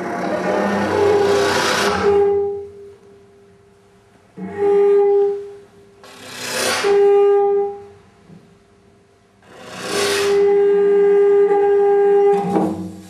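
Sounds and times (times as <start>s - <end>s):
trumpet long held notes: 6.9s - 7.9s.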